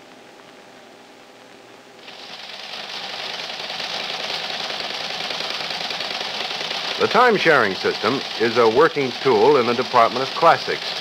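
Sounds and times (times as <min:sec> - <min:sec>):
faint steady hum: 0:00.0 - 0:11.0
teletype clattering: 0:02.0 - 0:11.0.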